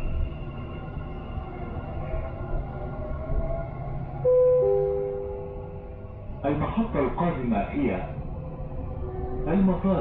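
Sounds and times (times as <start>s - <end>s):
train running with low rumble: 0.0s - 10.0s.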